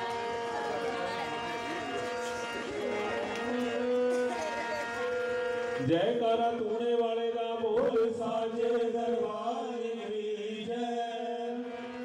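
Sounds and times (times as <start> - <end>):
voices: 0.0 - 11.7
harmonium sustained notes: 0.0 - 12.0.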